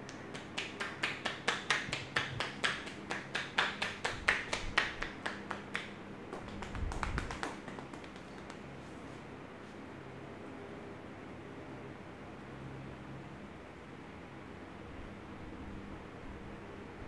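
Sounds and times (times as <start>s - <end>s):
hands tapping on head: 0.0s - 8.6s.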